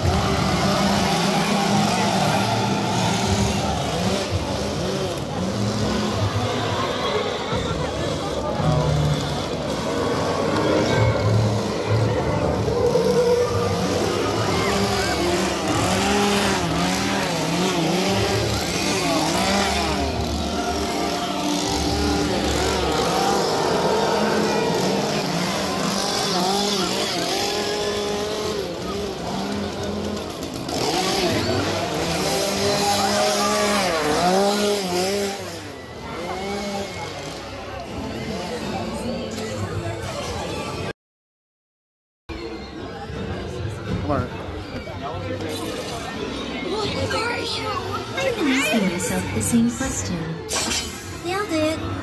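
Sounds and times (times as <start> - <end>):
crowd chatter: 0.0 - 40.9, 42.3 - 52.0.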